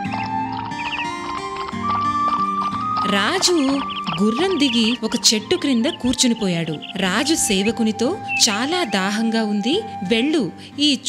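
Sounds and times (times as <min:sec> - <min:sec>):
cartoon horse hooves clip-clopping: 0:00.0 - 0:05.3
background music with held notes: 0:00.0 - 0:11.0.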